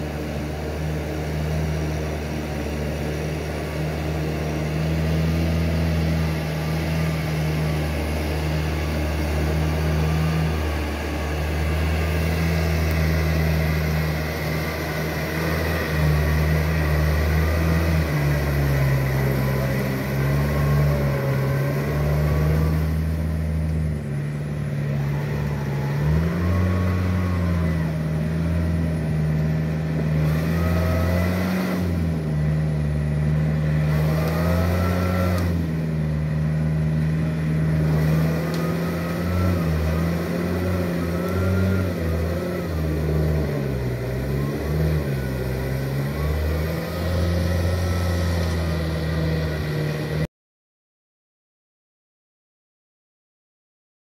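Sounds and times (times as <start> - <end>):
tractor engine running under load: 0.0 - 50.3.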